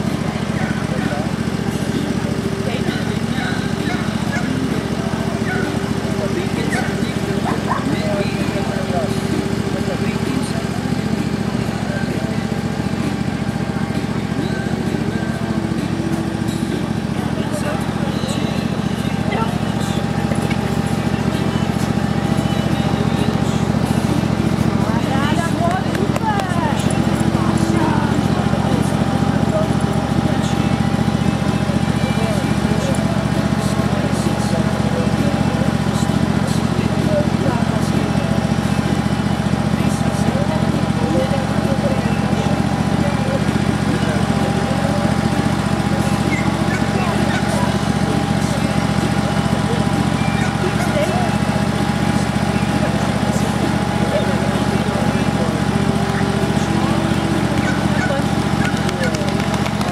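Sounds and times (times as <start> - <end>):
faint voices: 0.0 - 59.9
low motor drone with whine: 0.0 - 59.9.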